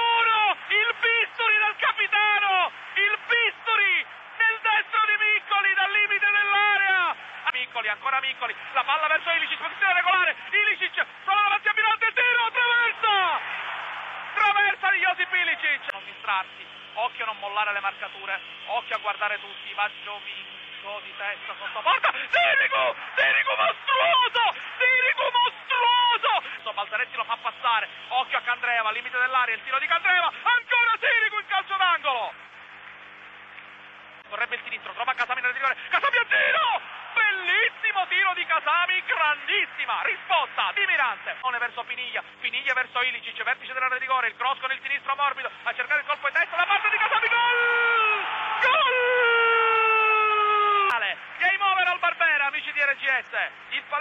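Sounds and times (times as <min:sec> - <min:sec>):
man commentating rapidly: 0:00.0 - 0:13.5, 0:14.3 - 0:32.4, 0:34.3 - 0:49.1, 0:50.3 - 0:54.0
stadium crowd noise: 0:00.0 - 0:54.0.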